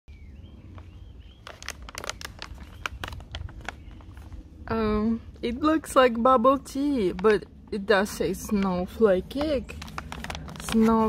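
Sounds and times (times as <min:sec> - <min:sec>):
low steady rumble: 0:00.1 - 0:11.0
plastic snack bag crinkling: 0:01.4 - 0:04.4, 0:09.3 - 0:11.0.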